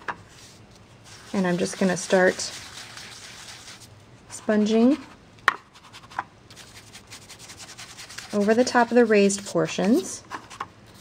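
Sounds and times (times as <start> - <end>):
sponge rubbing on cardstock: 0.3 - 3.9, 5.8 - 10.1.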